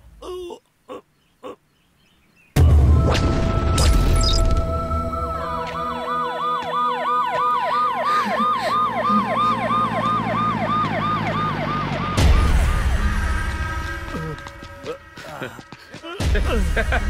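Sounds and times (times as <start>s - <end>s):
steady low drone: 2.6s - 10.0s, 12.1s - 15.5s
police siren yelping: 4.6s - 13.3s.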